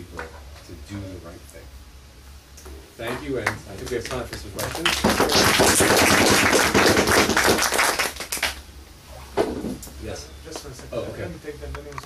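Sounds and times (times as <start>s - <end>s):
audience applauding: 3.4s - 8.6s.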